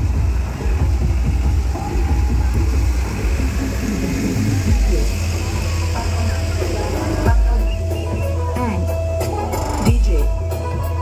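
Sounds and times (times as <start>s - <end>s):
truck engine rumbling: 0.0s - 11.0s.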